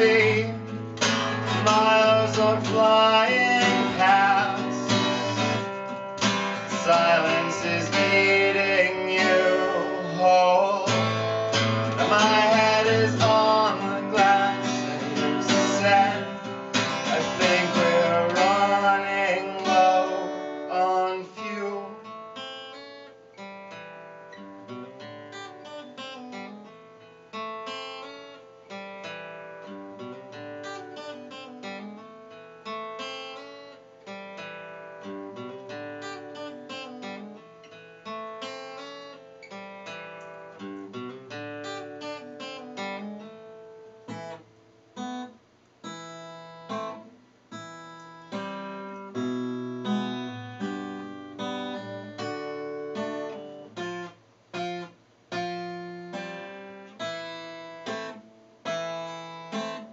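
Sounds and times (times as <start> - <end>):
acoustic guitar playing: 0.0 - 59.9.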